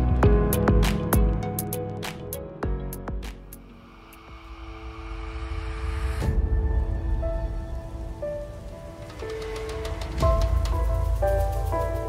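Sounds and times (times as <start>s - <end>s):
hissing riser: 3.8s - 11.0s.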